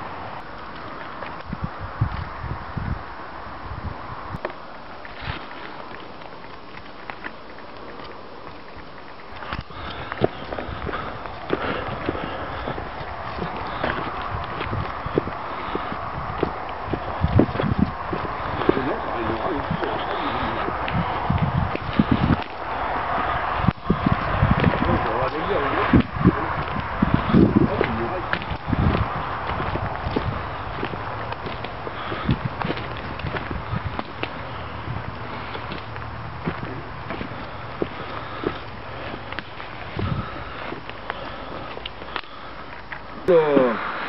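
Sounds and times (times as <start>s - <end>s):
twigs snapping: 4.4s - 43.1s
footsteps through leaf litter: 9.4s - 42.5s
indistinct low voices: 10.6s - 32.7s.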